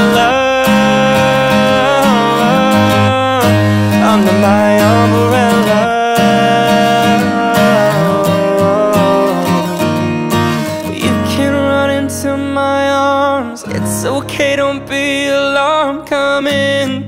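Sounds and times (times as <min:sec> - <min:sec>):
acoustic guitar strumming: 0:00.0 - 0:17.0
man singing: 0:00.0 - 0:17.0.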